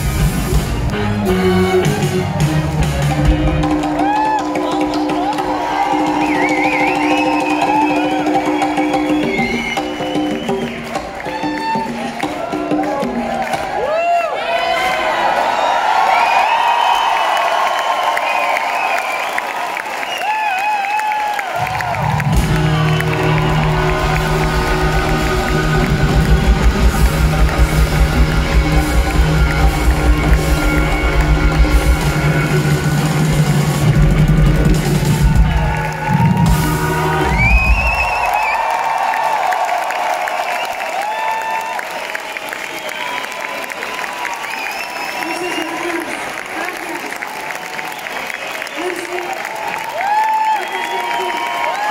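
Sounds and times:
live rock band: 0.0s - 13.7s, 21.6s - 38.5s
crowd cheering and whooping: 0.0s - 51.9s.

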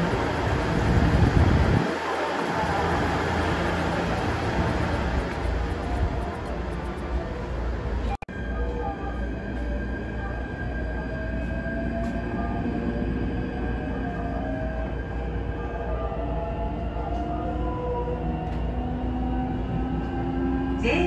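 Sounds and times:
train running rumble: 0.0s - 8.2s.

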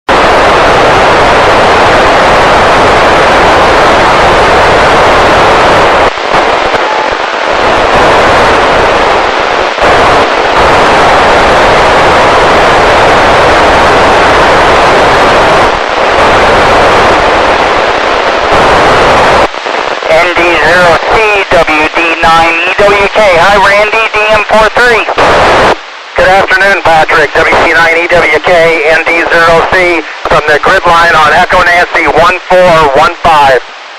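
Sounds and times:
radio receiver hiss: 0.1s - 33.9s
voice over radio noise: 5.3s - 33.7s.

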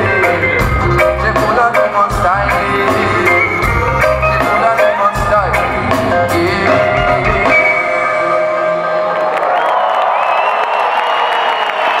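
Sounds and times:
crowd cheering: 7.7s - 12.0s.

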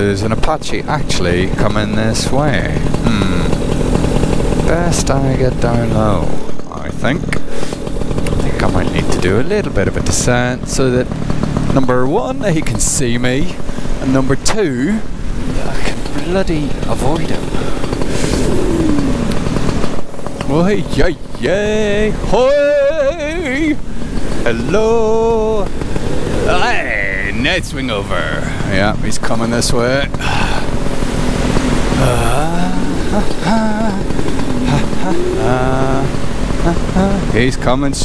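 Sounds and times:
paramotor engine running: 0.0s - 38.0s
rushing noise of flight: 0.0s - 38.0s
man laughing: 2.4s - 3.6s, 21.6s - 23.8s, 26.4s - 27.4s, 31.9s - 37.5s.

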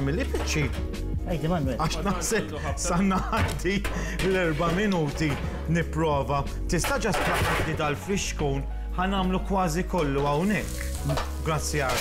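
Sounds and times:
background music with singing: 0.0s - 12.0s
pan sizzling: 10.0s - 12.0s.

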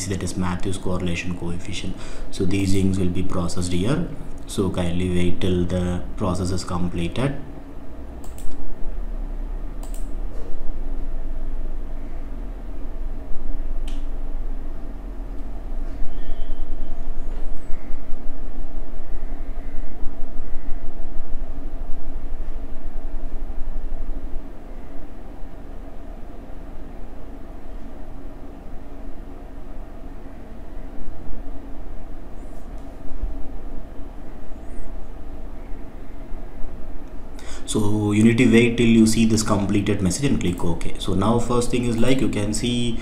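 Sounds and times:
sharp click: 8.2s - 8.6s, 9.8s - 10.5s.

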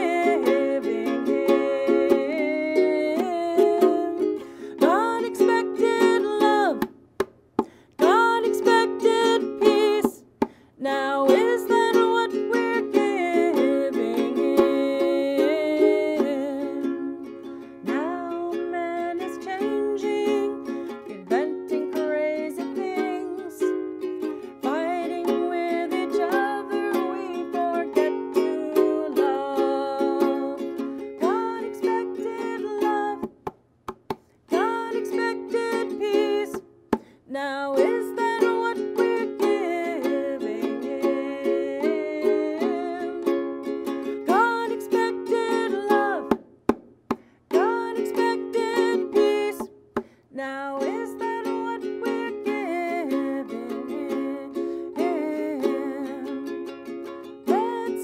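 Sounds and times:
woman singing: 0.0s - 7.0s, 7.9s - 33.5s, 34.5s - 46.4s, 47.5s - 58.0s
ukulele strumming: 0.0s - 58.0s.

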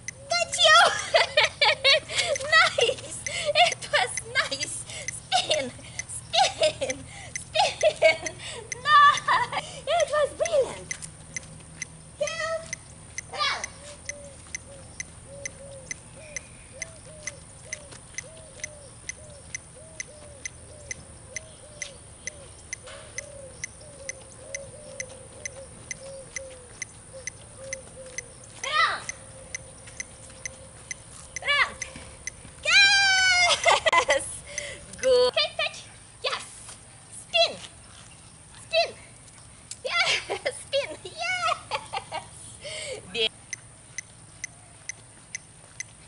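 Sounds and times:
metronome ticking: 0.0s - 32.5s, 43.5s - 46.0s.

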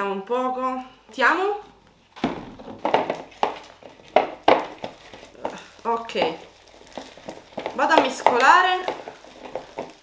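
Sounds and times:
slime squelching: 1.6s - 10.0s.

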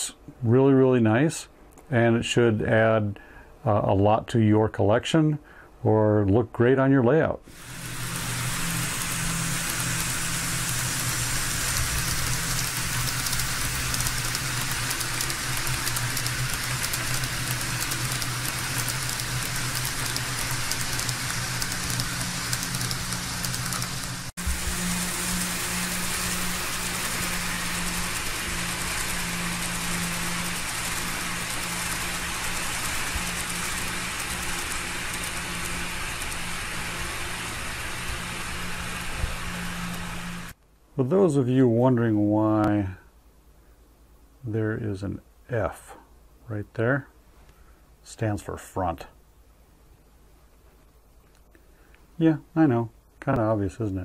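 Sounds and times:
small motors whirring: 7.5s - 40.6s
wheels rolling on rails: 7.5s - 40.6s.

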